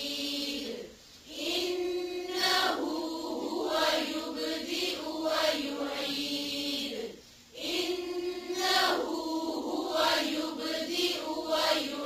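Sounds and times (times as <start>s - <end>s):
voices chanting recitation: 0.0s - 12.0s.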